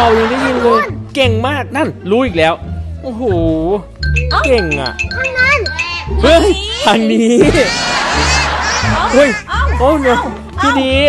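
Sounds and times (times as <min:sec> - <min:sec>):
crowd laughing: 0:00.0 - 0:00.8, 0:07.4 - 0:09.5
person speaking: 0:04.2 - 0:06.6.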